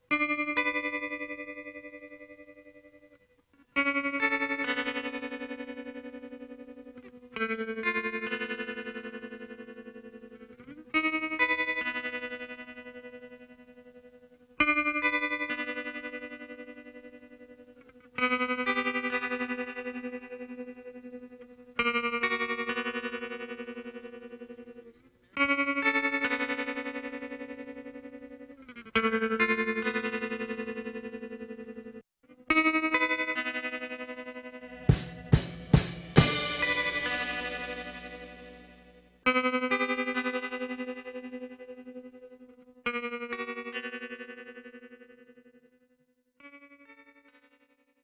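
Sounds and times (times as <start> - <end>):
slow guitar chords ringing: 0.0 - 45.8.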